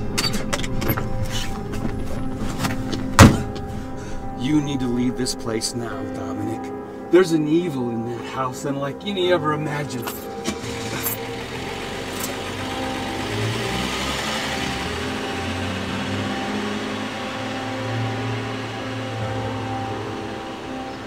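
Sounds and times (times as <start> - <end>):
low music drone: 0.0 - 21.0
car engine running: 10.2 - 21.0.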